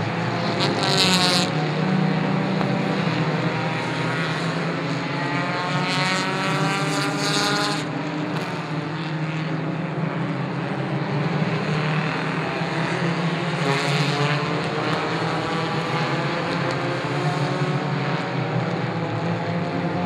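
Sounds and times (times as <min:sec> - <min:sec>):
race car engine accelerating: 0:00.0 - 0:20.0.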